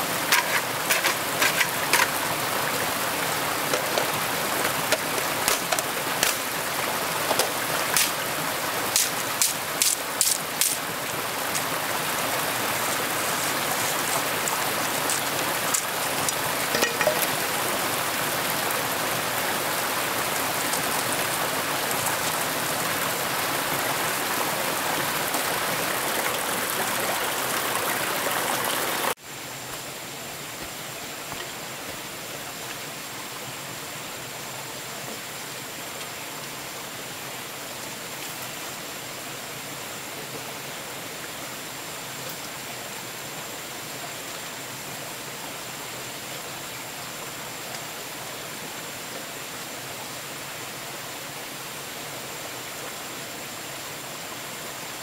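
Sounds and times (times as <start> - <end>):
rain hiss: 0.0 - 55.0
sharp raindrop ticks: 8.9 - 10.8.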